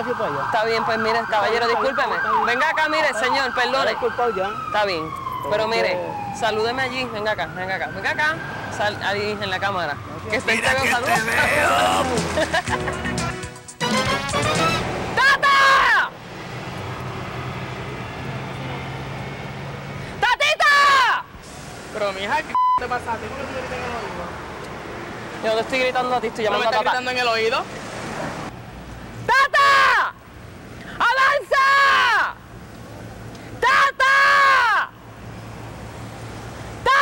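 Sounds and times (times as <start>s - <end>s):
street traffic engine hum: 0.0s - 37.0s
woman yelling high-pitched: 15.2s - 16.1s, 20.2s - 21.3s, 29.3s - 30.2s, 31.0s - 32.4s, 33.6s - 34.9s.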